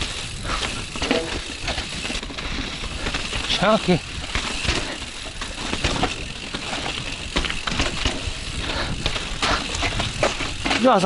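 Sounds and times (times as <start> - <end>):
bike knocks and rattles: 0.0 - 11.0
tyres rolling over rocky dirt: 0.0 - 11.0.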